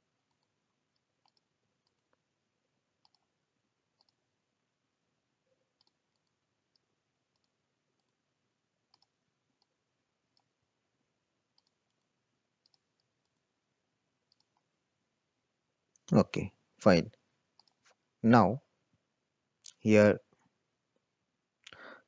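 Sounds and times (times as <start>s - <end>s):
computer mouse clicks: 0.3s - 2.2s, 3.0s - 3.4s, 4.0s - 4.2s, 5.7s - 8.2s, 8.9s - 10.6s, 11.5s - 13.4s, 14.3s - 14.7s, 17.6s - 18.0s.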